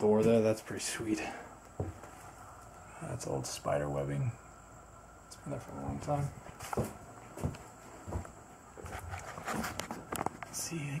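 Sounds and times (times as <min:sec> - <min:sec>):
footsteps on wooden floorboards: 0:01.8 - 0:02.2, 0:06.2 - 0:10.3.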